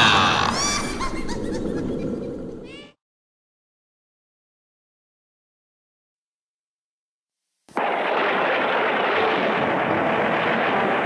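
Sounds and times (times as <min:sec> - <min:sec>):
cartoon character laughing: 0:00.0 - 0:03.0.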